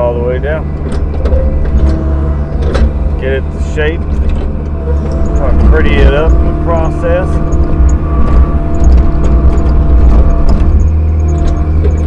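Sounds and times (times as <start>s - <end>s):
diesel engine running: 0.0s - 12.0s
hydraulics working: 0.0s - 12.0s
sharp clicks and knocks: 0.7s - 3.2s, 7.3s - 12.0s.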